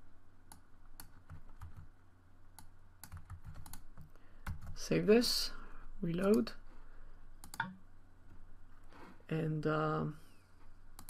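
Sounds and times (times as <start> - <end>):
low steady hum: 0.0 - 11.0
faint keyboard typing: 0.5 - 1.9, 2.5 - 4.9, 6.1 - 6.6, 7.4 - 7.8.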